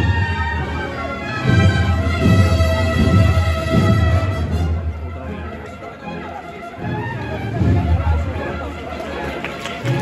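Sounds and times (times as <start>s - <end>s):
cornet and drum band: 0.0s - 10.0s
crowd chatter: 0.0s - 10.0s
people clapping: 8.8s - 10.0s.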